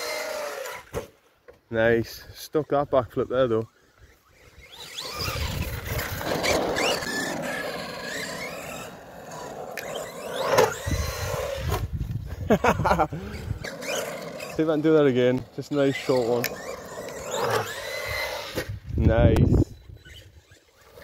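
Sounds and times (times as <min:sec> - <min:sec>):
electric motor whining: 0:00.0 - 0:01.0, 0:02.8 - 0:12.2, 0:13.1 - 0:21.0.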